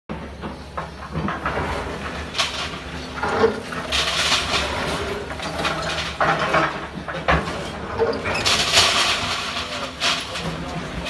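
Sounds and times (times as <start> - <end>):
excavator diesel engine running: 0.1 - 11.0
debris scraping: 1.2 - 11.0
crash of falling rubble: 2.0 - 6.8, 7.5 - 10.7.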